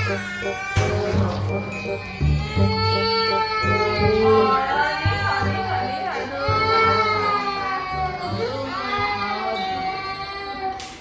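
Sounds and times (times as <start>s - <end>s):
toddler crying: 0.0s - 11.0s.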